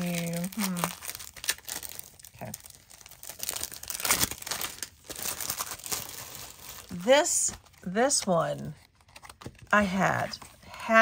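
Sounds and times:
plastic sleeves crinkling: 0:00.0 - 0:10.8.

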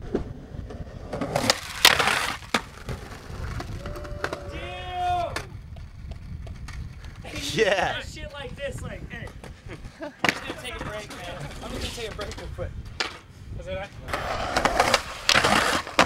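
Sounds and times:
skateboard clattering on concrete: 0:01.0 - 0:04.5, 0:10.2 - 0:13.2, 0:14.1 - 0:16.0
wind rumble on microphone: 0:02.8 - 0:16.0
person calling out: 0:07.3 - 0:08.0.

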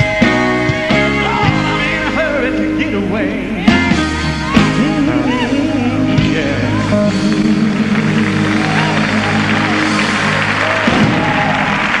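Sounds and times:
gospel band sustaining a chord: 0:00.0 - 0:12.0
applause: 0:07.3 - 0:12.0.

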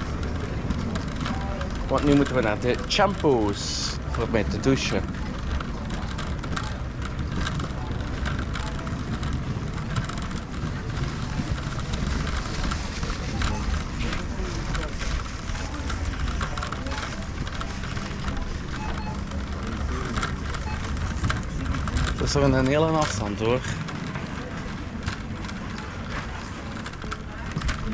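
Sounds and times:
faint voices: 0:00.0 - 0:27.9
shopping trolley wheels rumbling: 0:00.0 - 0:27.9
trolley rattling and clicking: 0:00.0 - 0:27.9.

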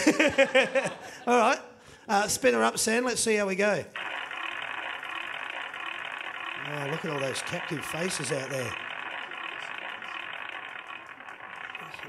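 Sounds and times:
prize wheel pointer ticking: 0:04.0 - 0:12.0.

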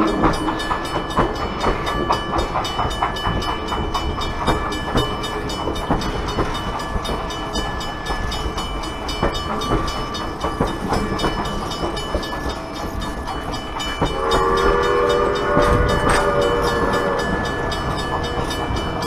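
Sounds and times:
railcar wheels rumbling: 0:00.0 - 0:19.0.

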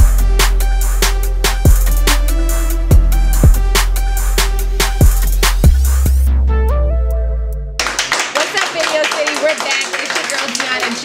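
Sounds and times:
people clapping: 0:07.8 - 0:11.0.

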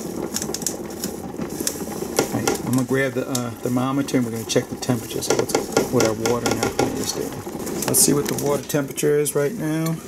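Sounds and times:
water boiling in a pot: 0:00.0 - 0:10.0.

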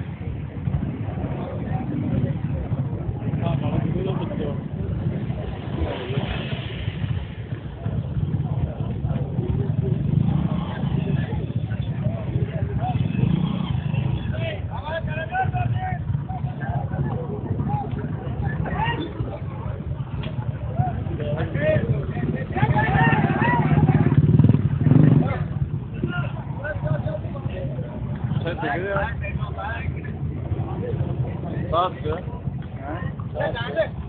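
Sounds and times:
motorcycle engine running: 0:00.0 - 0:34.0
people talking faintly: 0:00.0 - 0:34.0
traffic rumble: 0:00.0 - 0:34.0
men calling out: 0:20.7 - 0:24.0.

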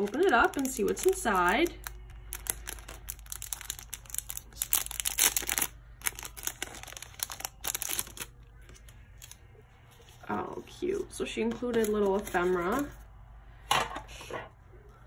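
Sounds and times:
plastic bag crinkling: 0:00.0 - 0:09.5.

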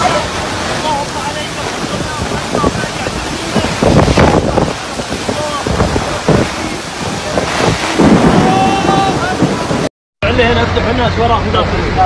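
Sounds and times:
deep rumble: 0:00.0 - 0:12.0
torrential rain: 0:00.0 - 0:12.0.

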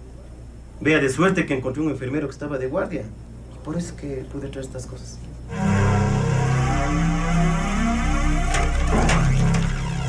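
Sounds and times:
dark low sustained chord: 0:05.5 - 0:10.0.

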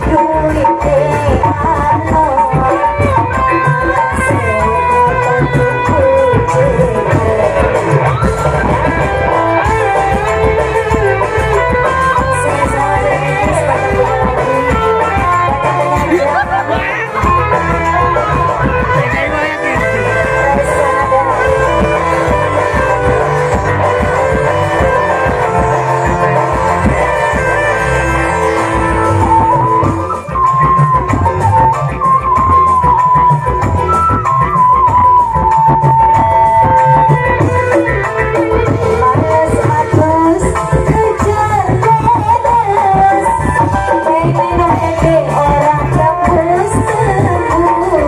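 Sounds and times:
live band music: 0:00.0 - 0:48.0
melody line: 0:00.0 - 0:48.0
steady drum beat: 0:00.0 - 0:48.0.

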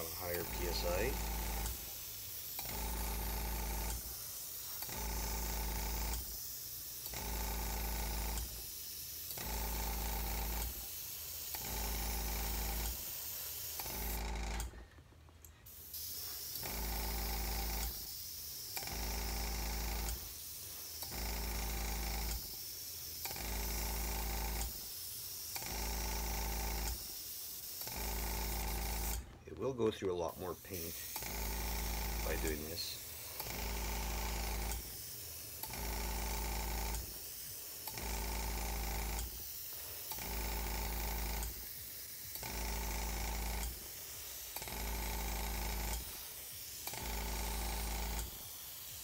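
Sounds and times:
airbrush spraying hiss: 0:00.0 - 0:14.2, 0:15.6 - 0:49.0.

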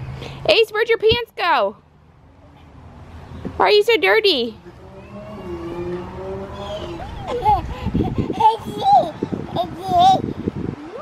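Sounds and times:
motor humming with whine: 0:04.3 - 0:08.3.

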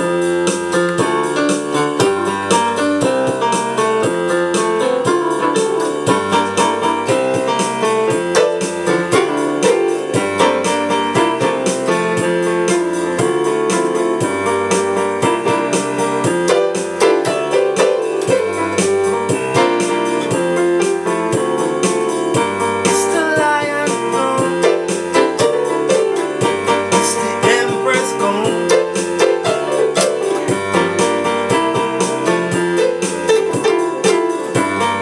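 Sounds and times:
electronic keyboard piano chords: 0:00.0 - 0:35.0.

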